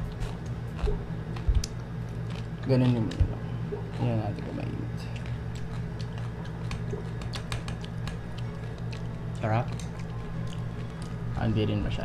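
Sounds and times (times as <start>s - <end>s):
steady low hum: 0.0s - 12.0s
crunching crispy pork skin: 0.1s - 12.0s.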